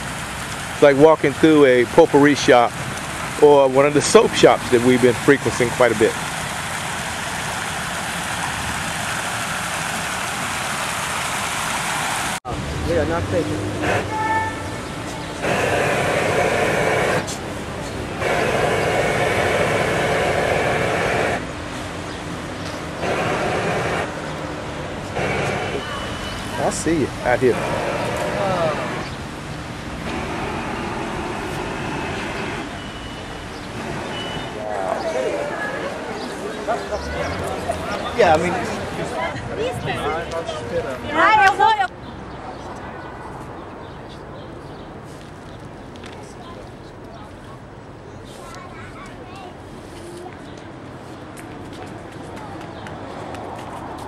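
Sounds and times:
fountain water splashing: 0.0s - 21.8s, 22.7s - 41.7s
traffic noise: 0.0s - 54.0s
people talking: 0.8s - 2.7s, 3.4s - 6.2s, 12.5s - 15.5s, 25.6s - 27.7s, 28.3s - 29.0s, 34.6s - 41.9s.

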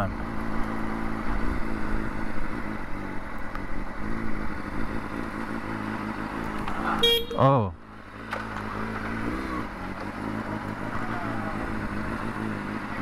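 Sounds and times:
motorcycle engine running at low revs: 0.0s - 13.0s.

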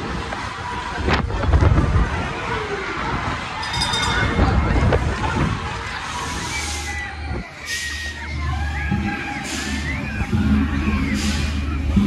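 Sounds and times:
crowd voices and shouts: 0.0s - 12.0s
ride machinery drone: 0.0s - 12.0s.

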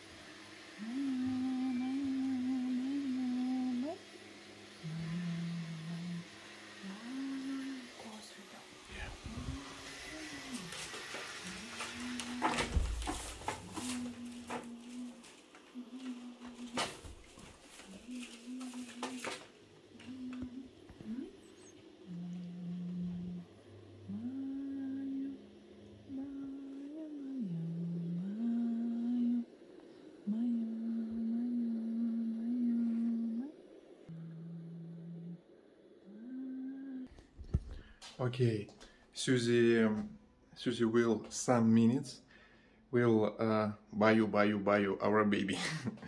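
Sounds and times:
woman humming softly: 0.3s - 37.2s.

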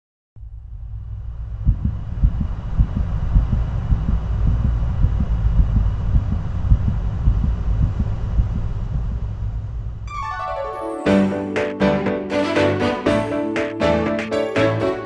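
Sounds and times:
deep rumble and hiss: 0.4s - 10.0s
heartbeat thumps: 1.5s - 9.2s.

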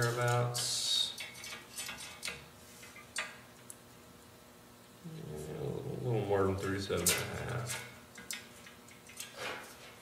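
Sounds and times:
tape measure ticks and scrapes on steel: 0.0s - 3.8s.

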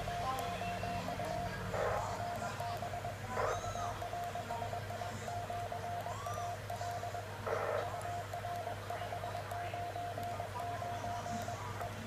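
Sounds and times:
morse code tone: 0.0s - 12.0s.

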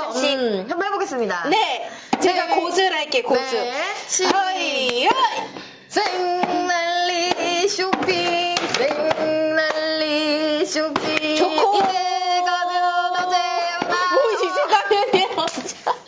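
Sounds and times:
woman singing a jingle: 6.0s - 15.3s
hand claps: 15.4s - 15.8s.

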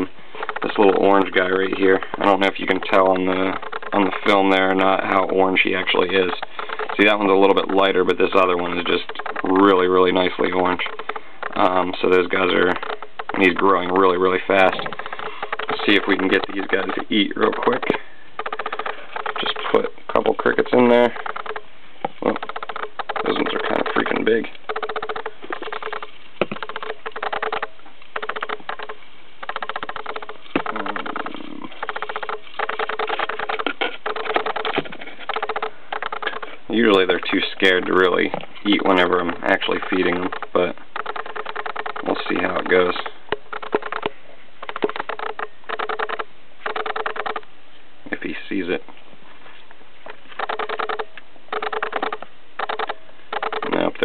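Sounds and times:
cricket chirping: 0.0s - 37.0s.

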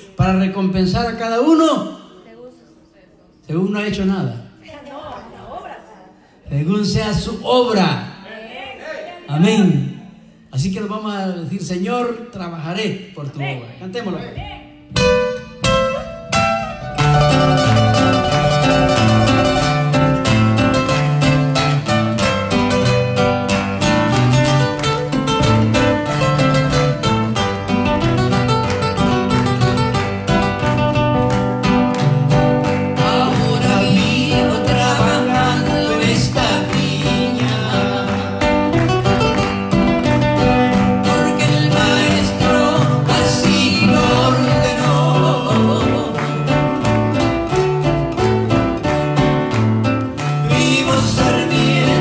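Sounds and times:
acoustic guitars playing: 13.8s - 52.0s
man and woman singing duet: 32.8s - 39.2s, 40.6s - 47.1s, 50.4s - 52.0s.

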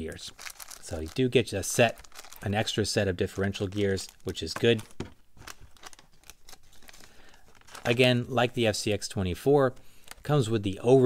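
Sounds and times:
plastic bags crinkling: 0.0s - 8.5s.

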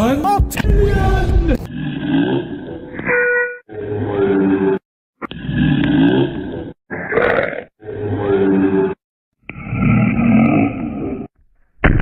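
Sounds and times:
distorted gliding voice sounds: 0.0s - 3.0s, 3.7s - 11.3s
short electronic tone: 3.0s - 3.7s.

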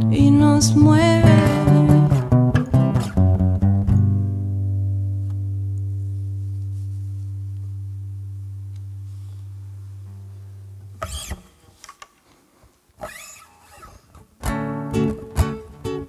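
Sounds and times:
classical guitar chord ringing: 1.2s - 9.4s
short scrapes: 11.0s - 14.2s.

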